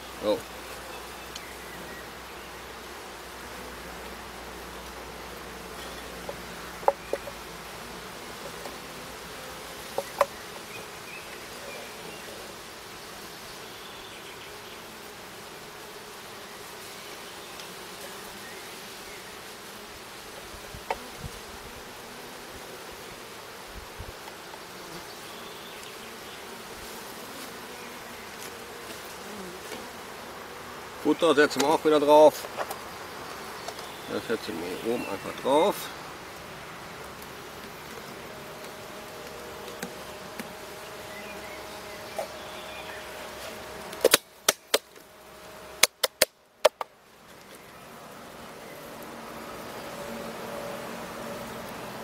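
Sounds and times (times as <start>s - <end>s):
honeybees buzzing: 0.0s - 52.0s
knocks of wooden hive parts: 5.8s - 7.4s, 9.8s - 10.7s, 38.6s - 40.6s, 43.6s - 45.1s, 45.8s - 47.5s.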